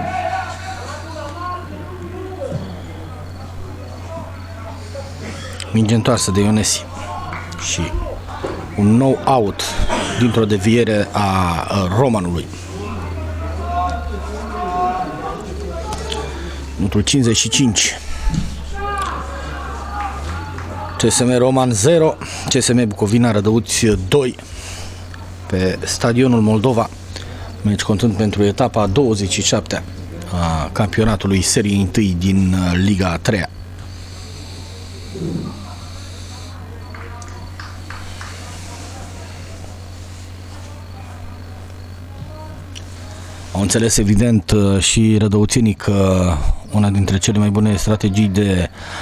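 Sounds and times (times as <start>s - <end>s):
faint shouts of footballers: 0.0s - 3.2s, 12.6s - 16.8s, 17.7s - 21.4s
distant players calling: 0.0s - 43.5s
steady low microphone hum: 0.0s - 49.0s
faint sounds from field: 33.7s - 44.0s.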